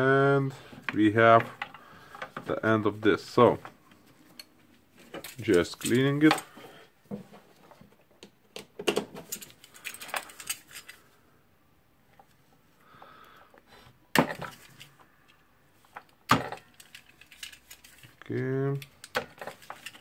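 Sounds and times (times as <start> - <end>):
wires and hand tools rattling: 0.8 - 6.6, 8.9 - 11.2, 14.4 - 20.0.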